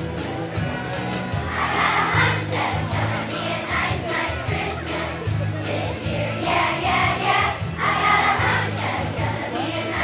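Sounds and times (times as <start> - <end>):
children's choir singing: 1.4 - 10.0.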